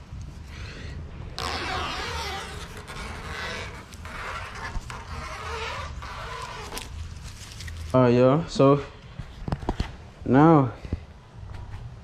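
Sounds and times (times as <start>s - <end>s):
tape liner peeling hiss: 1.4s - 7.9s.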